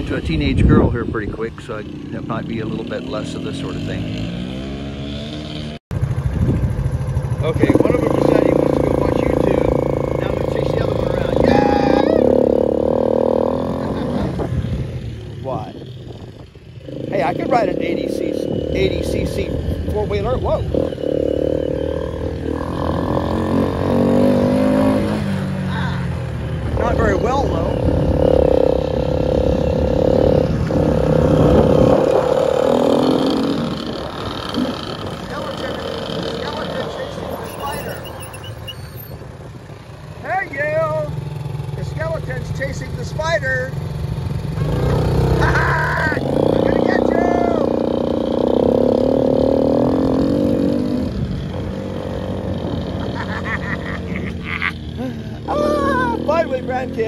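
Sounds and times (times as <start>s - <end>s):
quad engine revving: 0.0s - 38.4s, 40.3s - 57.0s
atv engines running: 0.0s - 57.0s.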